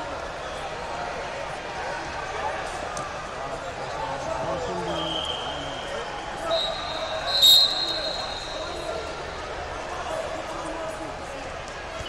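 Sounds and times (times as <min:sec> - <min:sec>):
people talking in a large hall: 0:00.0 - 0:12.0.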